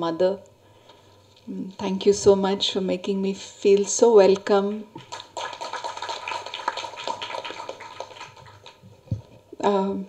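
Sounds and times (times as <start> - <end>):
audience applauding: 5.0 - 9.0.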